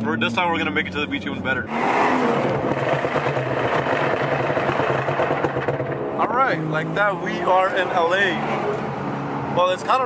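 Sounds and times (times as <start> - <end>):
car engine drone: 0.0 - 10.0
tyre and road noise: 0.0 - 10.0.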